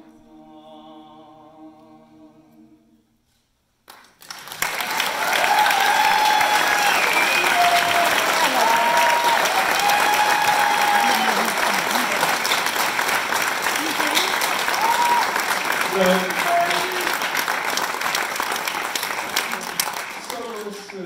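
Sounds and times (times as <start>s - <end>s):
audience applauding: 3.9s - 21.0s
shouted cheers: 4.8s - 12.3s, 14.7s - 17.2s.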